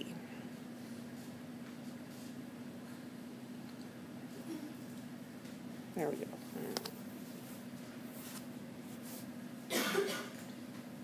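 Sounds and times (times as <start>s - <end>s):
low electrical hum: 0.0s - 11.0s
person coughing: 9.7s - 10.4s.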